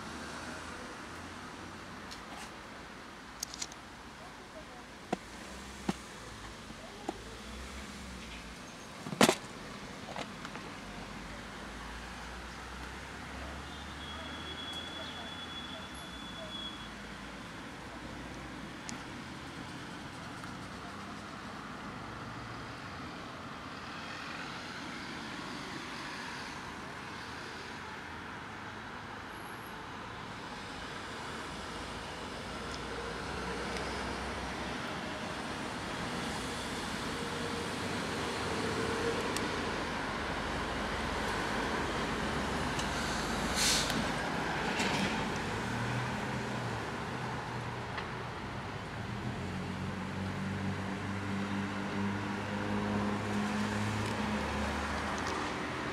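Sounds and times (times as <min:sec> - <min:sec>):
road traffic noise: 0:00.0 - 0:55.9.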